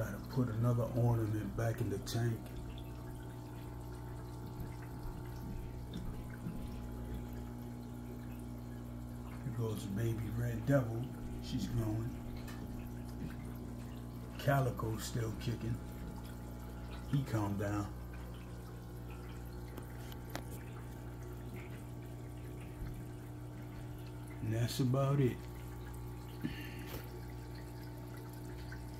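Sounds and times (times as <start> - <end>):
aquarium filter water bubbling: 0.0 - 28.9
steady low hum: 0.0 - 28.9.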